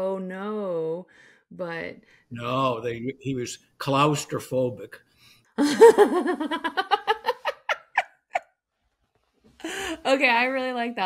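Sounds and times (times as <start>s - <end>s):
woman laughing: 5.6s - 8.5s.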